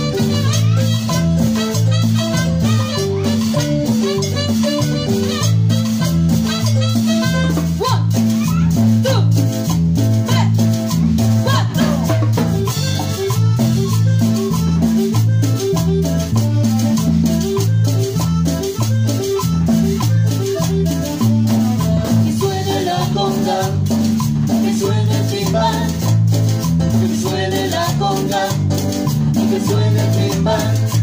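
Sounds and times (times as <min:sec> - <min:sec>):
drums: 0:00.0 - 0:31.0
electric bass line: 0:00.0 - 0:31.0
latin dance band playing: 0:00.0 - 0:31.0.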